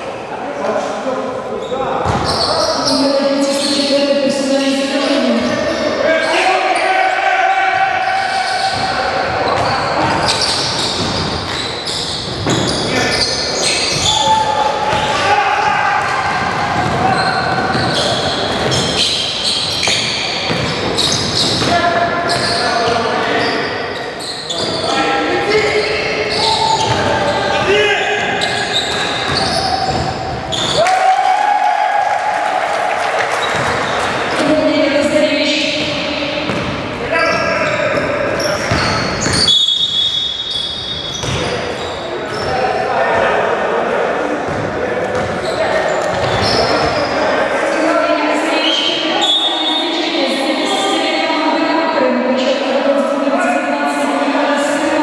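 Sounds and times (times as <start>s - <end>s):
players calling out: 1.4s - 50.1s
basketball bouncing on wooden floor: 16.0s - 19.0s, 19.8s - 22.5s, 35.7s - 36.8s, 37.9s - 39.5s, 41.0s - 41.5s.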